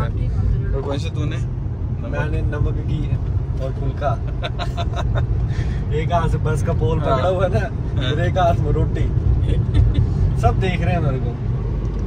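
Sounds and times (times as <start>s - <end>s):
road and engine rumble in car: 0.0s - 12.0s
people talking: 5.9s - 9.6s.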